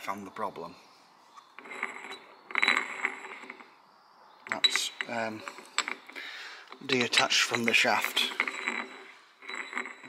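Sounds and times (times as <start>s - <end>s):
metal gear clattering: 4.4s - 10.0s.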